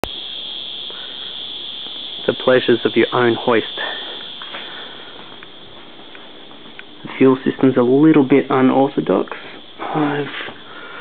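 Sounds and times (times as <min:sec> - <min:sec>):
high-pitched whine: 0:00.0 - 0:11.0.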